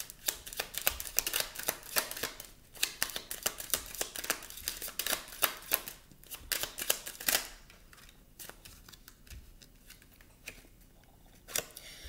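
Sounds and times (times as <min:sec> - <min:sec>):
cards being shuffled: 0:00.0 - 0:10.8.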